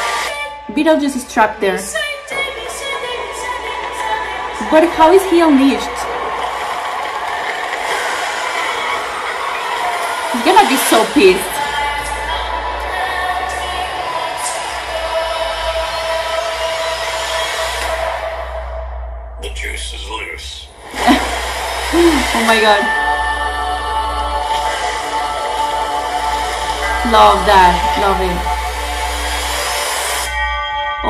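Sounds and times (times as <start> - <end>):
movie trailer soundtrack: 0.0 - 31.0.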